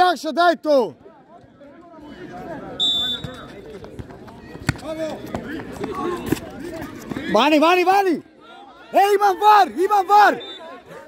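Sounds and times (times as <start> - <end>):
spectators' voices: 0.0 - 11.0
short high whistle: 2.8 - 3.4.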